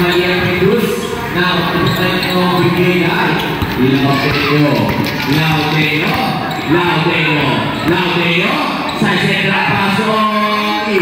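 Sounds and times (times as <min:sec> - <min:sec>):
basketball bouncing on hard floor: 0:03.4 - 0:06.5.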